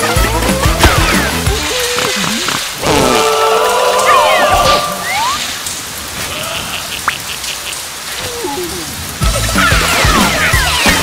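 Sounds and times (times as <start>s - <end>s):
rain on pavement: 0.0s - 11.0s.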